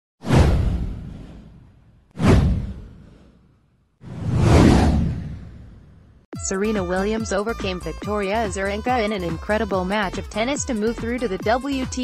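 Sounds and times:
deep whoosh: 0.2 - 3.4, 4.0 - 6.2.

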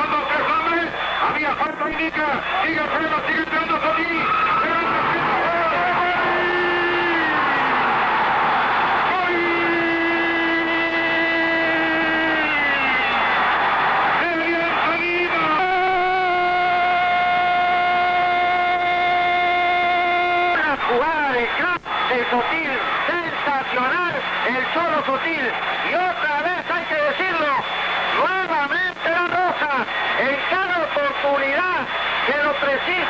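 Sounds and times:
commentator fast talk: 0.0 - 7.6, 9.0 - 13.0, 14.1 - 33.0
commentator shouting goal cry: 0.0 - 8.1, 9.0 - 13.2, 14.1 - 27.6.

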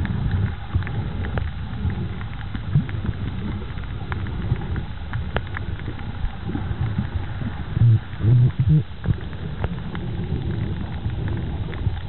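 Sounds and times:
faint sharp clicks: 0.0 - 12.0
underwater low rumble: 0.0 - 12.0.

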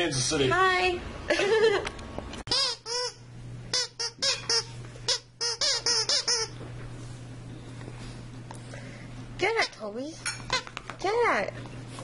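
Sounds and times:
dog toy squeaker squeaking: 2.5 - 6.5.

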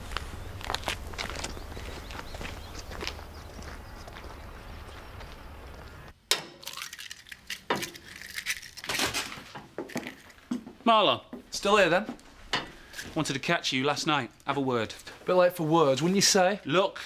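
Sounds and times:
footsteps: 0.0 - 6.1, 7.2 - 13.4
low outdoor background noise: 0.0 - 17.0.

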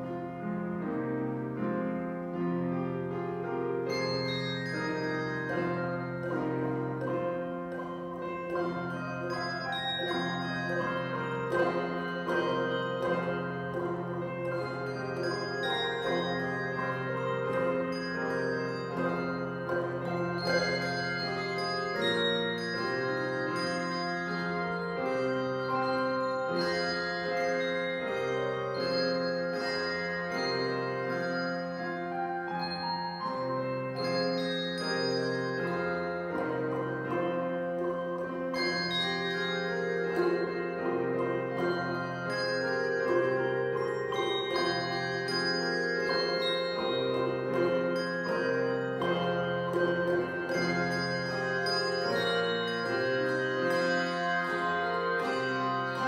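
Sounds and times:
handbell choir ringing chords: 3.7 - 56.0.

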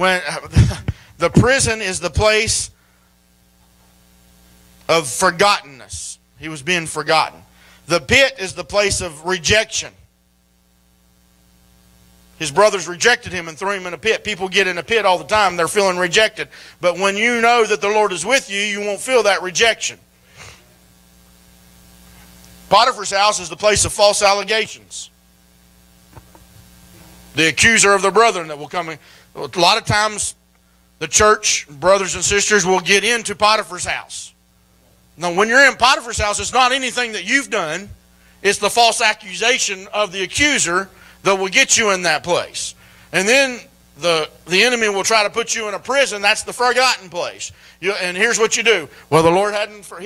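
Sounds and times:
man speaking: 0.0 - 2.8, 4.9 - 10.0, 12.4 - 20.0, 22.7 - 25.2, 27.3 - 30.4, 31.0 - 34.4, 35.2 - 50.0
faint mains hum: 0.0 - 50.0.

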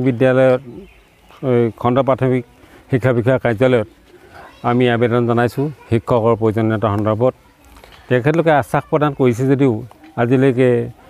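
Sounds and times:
man talking in a low voice: 0.0 - 4.0, 4.6 - 7.4, 8.1 - 11.0.

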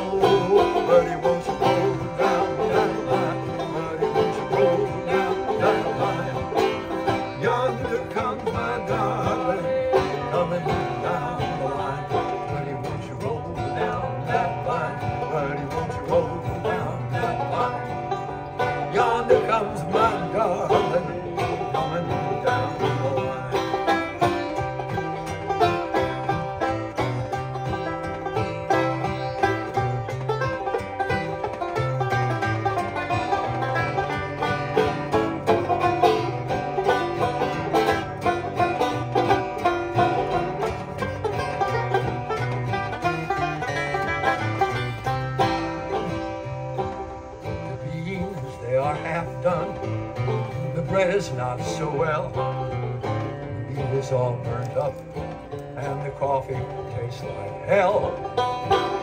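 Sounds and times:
acoustic guitar chords: 0.0 - 59.0
banjo picking melody: 0.0 - 59.0.

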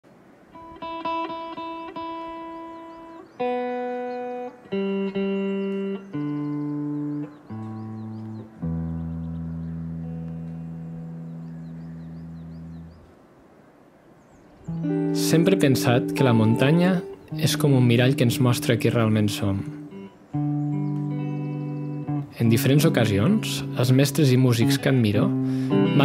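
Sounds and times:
electric guitar single notes: 0.5 - 13.0, 14.7 - 26.0.

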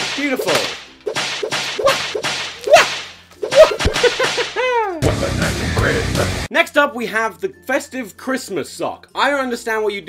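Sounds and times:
whip cracking: 0.0 - 4.6.

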